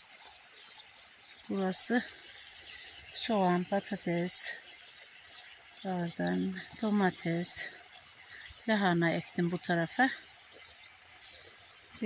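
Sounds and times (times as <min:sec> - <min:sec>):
hiss of irrigation water running: 0:00.0 - 0:12.0.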